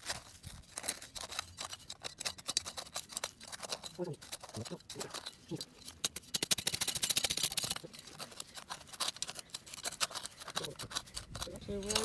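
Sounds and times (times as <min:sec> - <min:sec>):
trowel scraping into soil: 0:00.0 - 0:12.0.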